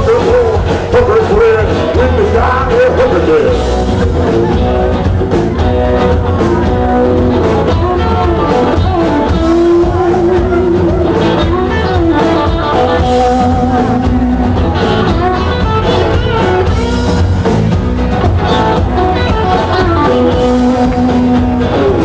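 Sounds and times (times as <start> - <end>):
bass: 0.0 - 22.0
drums: 0.0 - 22.0
electric guitar lead notes: 0.0 - 22.0.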